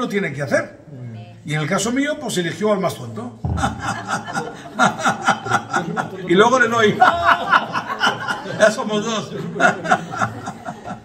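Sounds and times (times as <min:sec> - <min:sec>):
man chuckling: 0:03.6 - 0:05.9.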